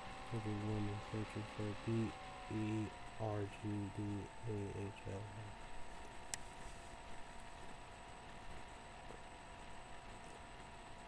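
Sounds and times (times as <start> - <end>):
faint high-pitched hum: 0.0 - 11.0.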